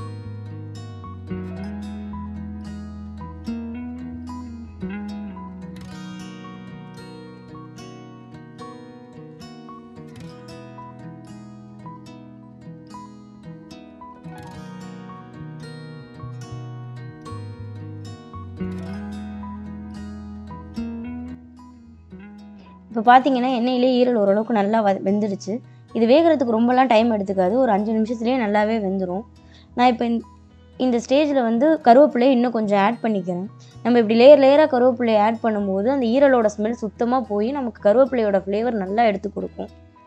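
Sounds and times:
plucked string music: 0.0s - 40.0s.

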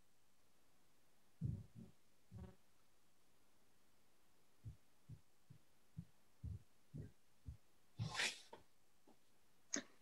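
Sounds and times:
soft low thumps: 1.4s - 2.6s, 4.6s - 7.8s.

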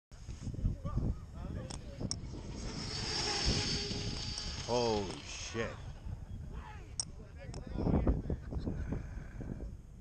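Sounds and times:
toy car motor whining: 2.1s - 6.0s.

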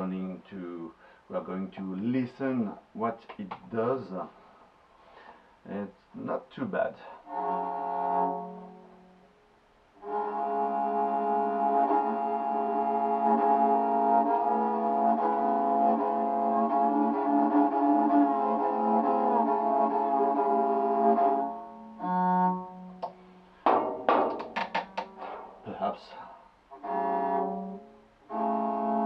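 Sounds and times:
bowed lyre melody: 7.3s - 9.1s, 10.0s - 24.3s, 26.8s - 29.0s
drone string: 7.3s - 9.1s, 10.0s - 26.0s, 26.7s - 29.0s.

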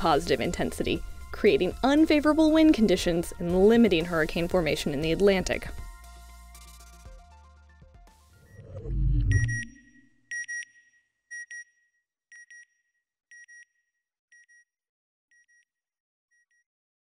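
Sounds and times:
deep electronic swell: 8.4s - 10.1s
short high beeps: 9.0s - 10.7s.

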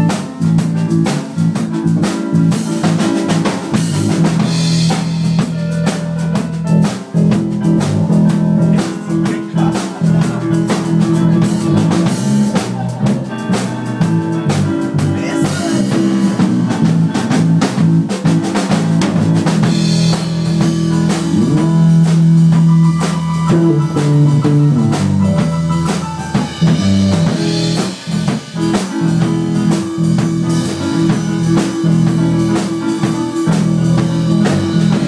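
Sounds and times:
bass guitar: 0.0s - 35.0s
blues band playing: 0.0s - 35.0s
drum kit: 0.0s - 35.0s
electric guitar: 0.0s - 35.0s.

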